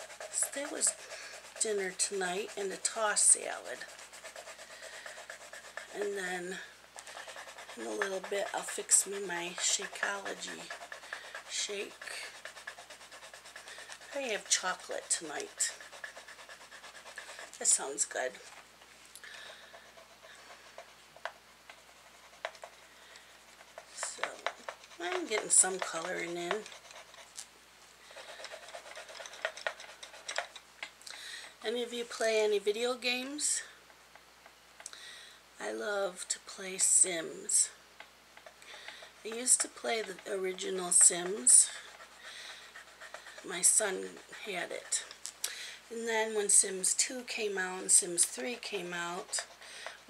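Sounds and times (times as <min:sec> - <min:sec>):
pencil scratching on paper: 0:00.0 - 0:30.6, 0:31.4 - 0:34.3, 0:35.7 - 0:37.8, 0:38.4 - 0:45.2, 0:45.8 - 0:50.0.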